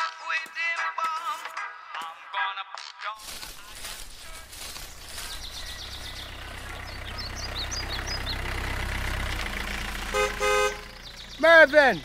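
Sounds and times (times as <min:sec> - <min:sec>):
vehicle engine rumbling: 0:03.2 - 0:12.0
birds chirping faintly: 0:03.4 - 0:12.0
car horn toots: 0:10.0 - 0:11.0.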